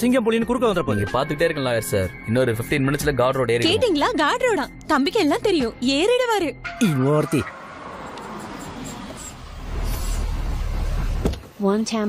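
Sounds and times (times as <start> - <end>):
car engine rumbling: 3.9 - 11.6.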